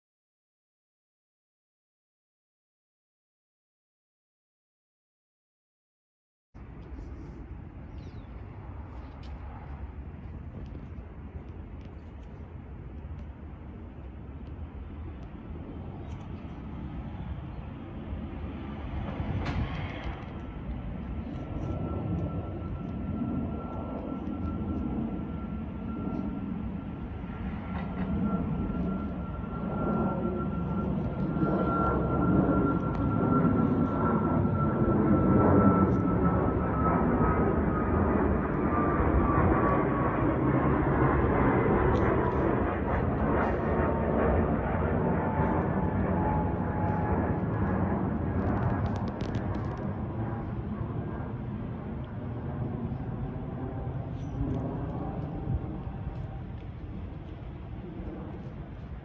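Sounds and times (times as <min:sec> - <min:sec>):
high jet engine whine: 0:06.6 - 0:59.0
jet airliner engine rumble: 0:06.6 - 0:59.0.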